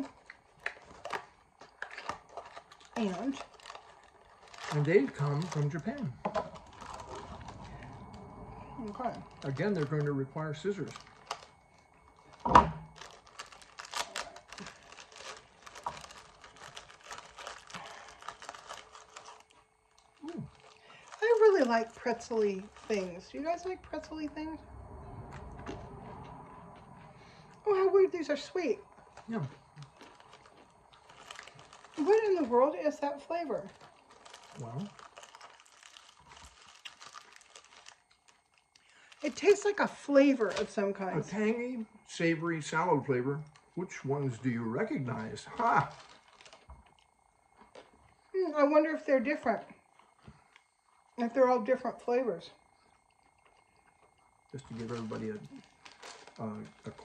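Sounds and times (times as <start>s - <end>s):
pretzel sticks being chewed: 0.0s - 23.4s, 28.8s - 32.8s, 33.5s - 39.6s, 43.3s - 48.2s, 52.8s - 57.0s
plastic snack packet crinkling: 0.0s - 24.3s, 27.7s - 48.0s, 54.5s - 57.0s.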